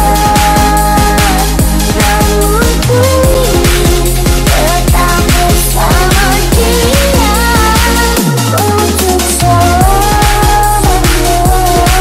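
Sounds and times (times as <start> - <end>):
fast kick drum: 0.0 - 8.4, 9.8 - 12.0.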